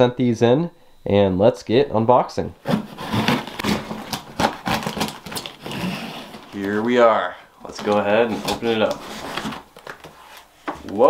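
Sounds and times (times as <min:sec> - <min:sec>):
cardboard flaps scraping and rustling: 0:02.6 - 0:07.0, 0:07.7 - 0:11.0.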